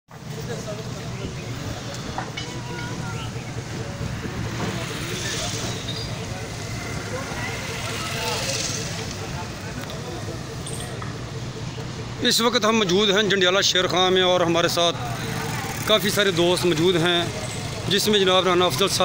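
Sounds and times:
men chattering: 0.1s - 19.0s.

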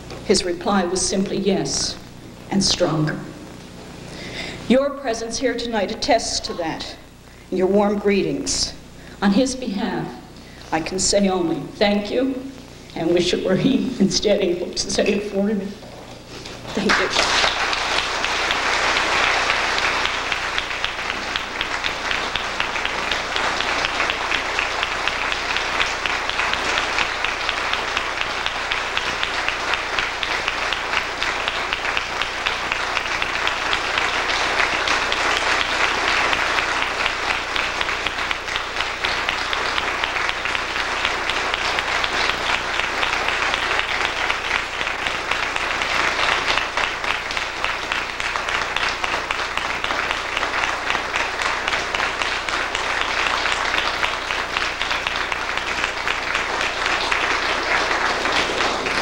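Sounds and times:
large crowd applauding: 16.7s - 59.0s.

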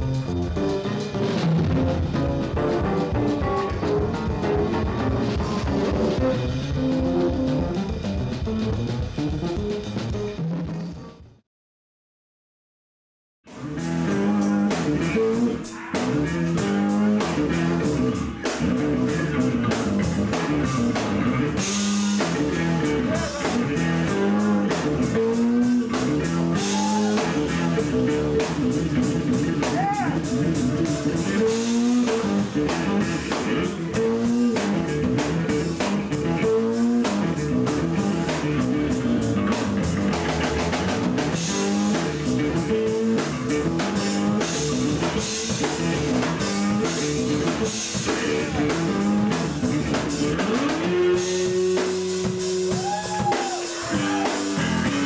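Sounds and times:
drum kit steady beat: 0.0s - 10.4s, 13.5s - 55.0s
electric bass playing: 0.0s - 10.9s, 13.5s - 55.0s.

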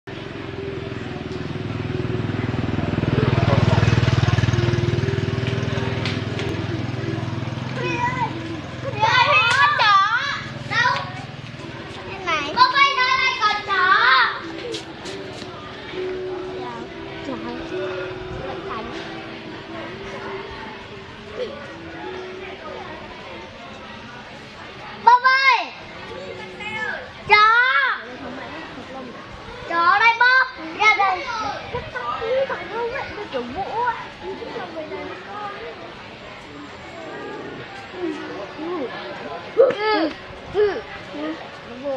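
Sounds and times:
motorbike passing: 0.1s - 25.0s, 31.3s - 39.6s
children calling and shrieking: 0.2s - 41.9s.

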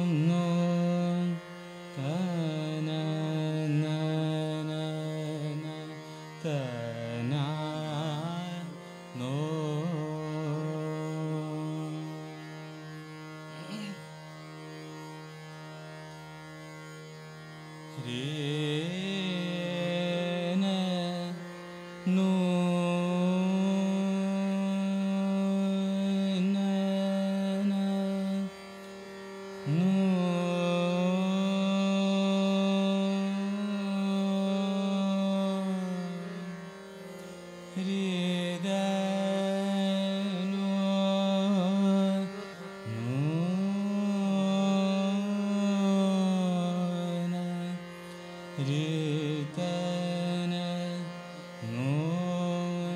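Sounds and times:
man singing classical vocals: 0.0s - 12.9s, 13.5s - 14.2s, 17.9s - 28.8s, 29.5s - 52.9s
harmonium: 0.0s - 52.9s
tanpura drone: 0.0s - 52.9s.

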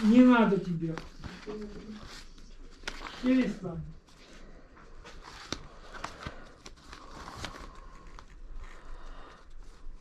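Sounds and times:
paper record sleeves rustling: 0.0s - 10.0s.

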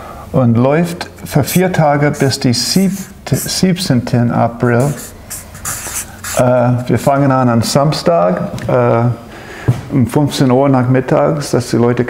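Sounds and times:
marker scratching on paper: 1.2s - 3.6s, 4.6s - 7.1s.

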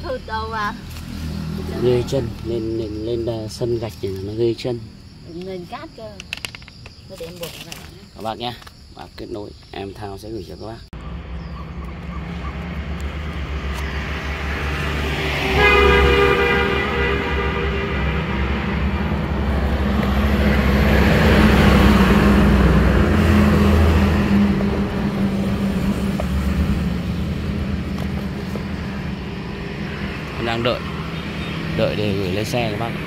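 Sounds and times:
vehicle horn: 15.0s - 19.2s.

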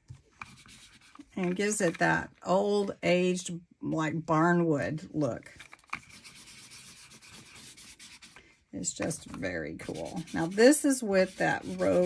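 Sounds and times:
ink pad rubbing on card: 0.4s - 1.2s, 6.0s - 8.4s, 9.8s - 12.0s.

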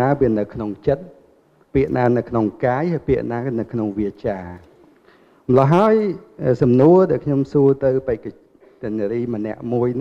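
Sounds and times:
man speaking into a microphone: 0.0s - 4.8s, 5.4s - 10.0s.

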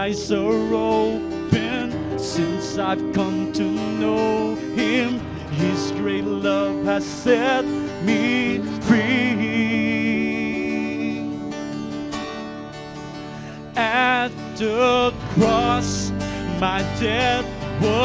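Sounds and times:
acoustic guitar: 0.0s - 18.0s
mixed choir singing: 14.9s - 17.2s.

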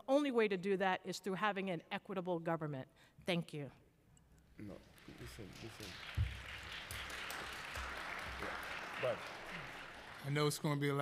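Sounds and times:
audience applauding: 4.6s - 11.0s.

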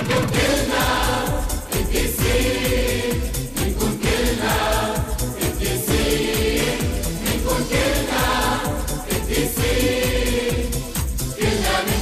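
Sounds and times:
instrumental backing with steady beat: 0.4s - 12.0s.

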